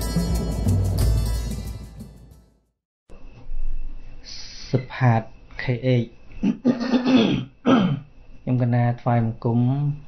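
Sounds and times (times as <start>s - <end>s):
man clearing his throat: 6.4s - 8.1s.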